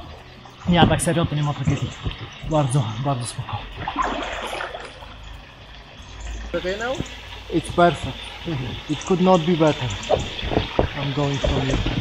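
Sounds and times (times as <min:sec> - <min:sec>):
river water flowing: 0:00.0 - 0:12.0
person swimming: 0:03.8 - 0:05.0.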